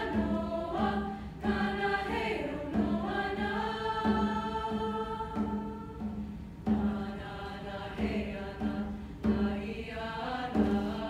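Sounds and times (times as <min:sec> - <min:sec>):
low hand drum beats: 0:00.0 - 0:11.0
treble choir chanting: 0:00.0 - 0:11.0.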